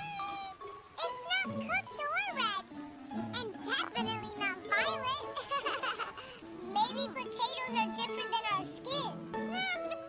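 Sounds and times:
high-pitched cartoon character vocalisations: 0.0 - 2.6, 3.3 - 10.0
light background music: 0.0 - 10.0.

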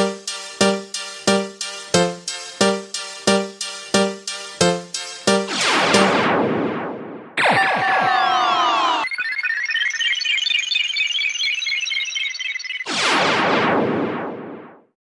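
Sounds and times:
noisy synthesizer sweep: 0.0 - 7.6.

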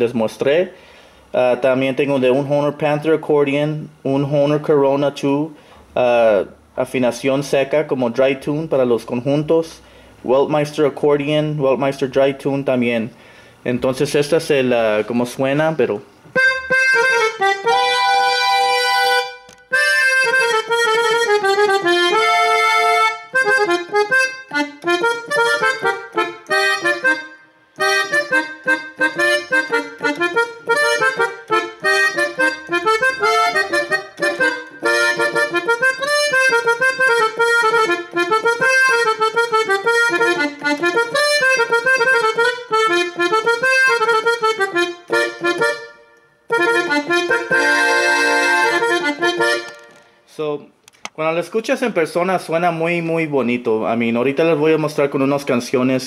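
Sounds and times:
accordion melody: 15.8 - 50.3.

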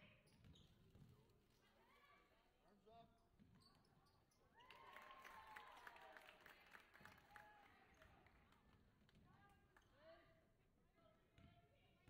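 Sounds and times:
sneakers squeaking on gym floor: 0.0 - 1.2, 3.4 - 4.4.

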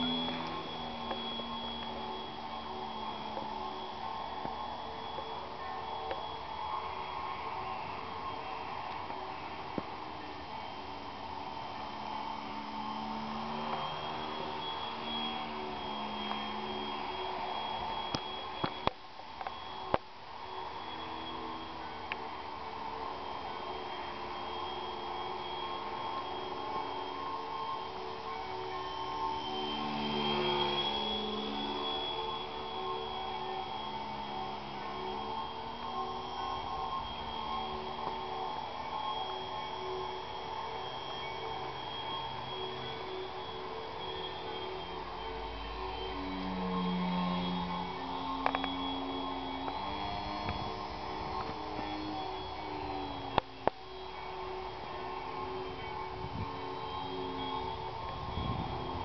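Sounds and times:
model plane motor whining: 0.0 - 59.0.

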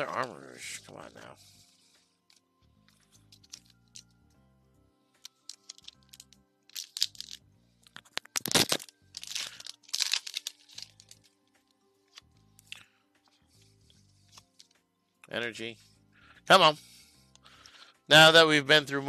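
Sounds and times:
quiet background music: 0.0 - 19.0
foil wrapper crinkling and tearing: 8.2 - 11.1.

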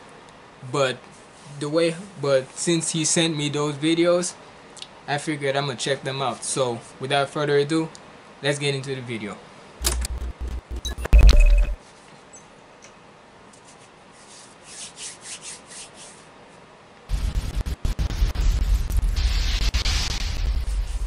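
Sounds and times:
hands rubbing headphones: 13.6 - 16.4
low rumbling with crackles: 17.1 - 21.0.

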